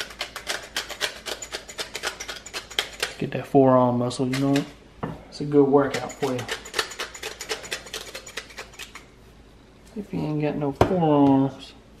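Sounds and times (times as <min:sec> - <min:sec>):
pepper mill grinding: 0:00.0 - 0:03.2, 0:04.1 - 0:04.7, 0:05.8 - 0:09.1.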